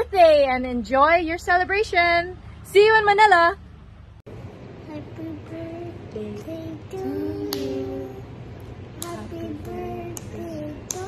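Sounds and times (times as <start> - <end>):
women and child singing: 4.9 - 8.4, 9.0 - 11.0
sharp clap: 7.4 - 7.9, 9.0 - 11.0.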